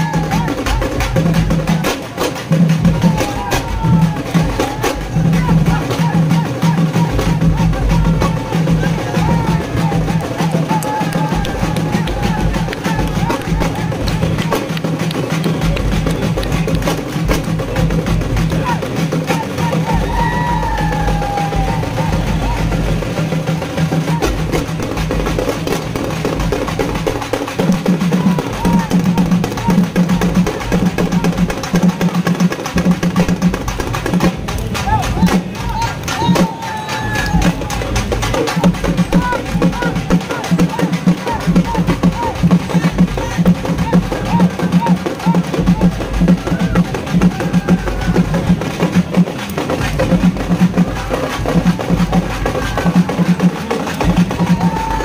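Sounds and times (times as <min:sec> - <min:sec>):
crowd shouting: 0:00.0 - 0:55.0
procession music with drumming: 0:00.0 - 0:55.0.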